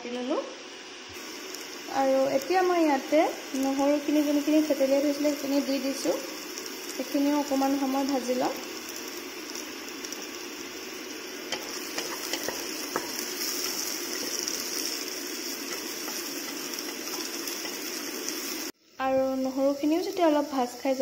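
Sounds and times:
onions sizzling in oil: 0.0s - 21.0s.

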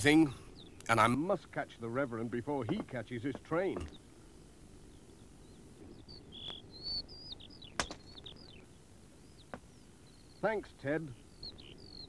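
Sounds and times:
faint birdsong: 0.0s - 12.0s.

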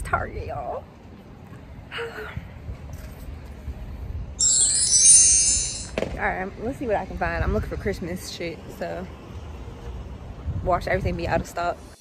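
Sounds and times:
wind rumble on microphone: 1.7s - 4.4s, 5.9s - 8.2s, 10.0s - 12.0s
sparkly chime sound effect: 4.4s - 6.0s.

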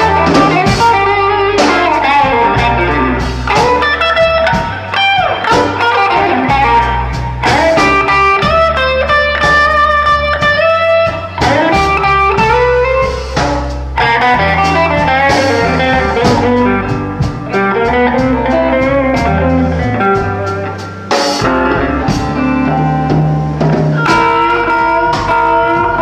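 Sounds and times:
bass and drums: 0.0s - 26.0s
electric guitar solo: 0.0s - 26.0s.

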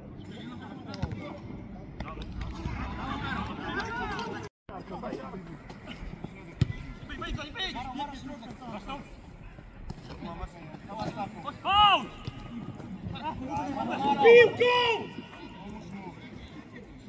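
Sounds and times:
players calling and shouting: 0.0s - 17.0s.

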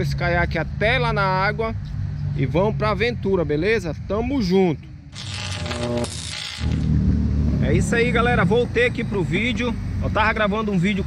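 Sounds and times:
digital glitch crackling burst: 5.2s - 6.9s.

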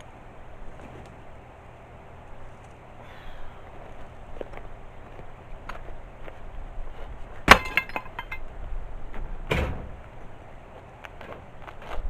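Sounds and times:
stone block dropped on stones: 7.5s - 8.4s.

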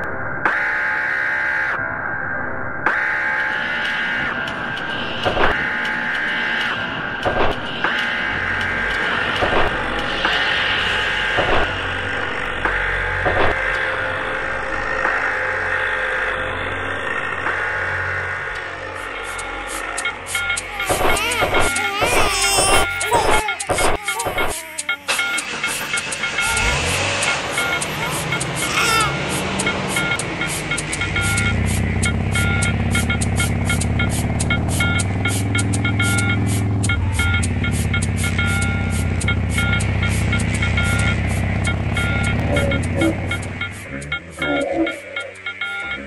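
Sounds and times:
music: 0.0s - 46.0s
truck engine running: 25.4s - 43.8s.

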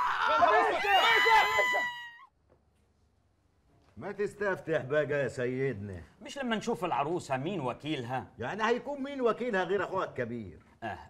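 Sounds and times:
woman screaming: 0.0s - 2.3s.

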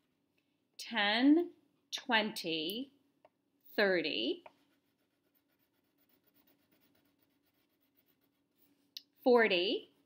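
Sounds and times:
crayon scratching on paper: 4.5s - 8.7s.

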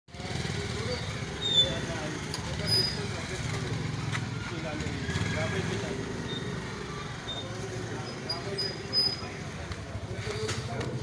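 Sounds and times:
motorcycle engine running: 0.1s - 11.0s
short high-pitched squeak: 1.4s - 1.8s, 6.2s - 6.6s, 7.3s - 9.3s.

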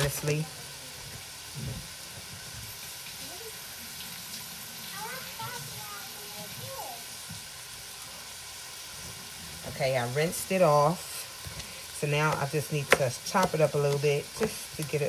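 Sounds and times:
vegetables sizzling in a frying pan: 0.0s - 15.0s.

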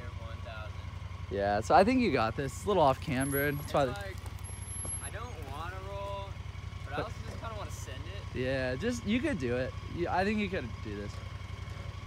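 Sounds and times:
engine running at low revs: 0.0s - 12.0s.

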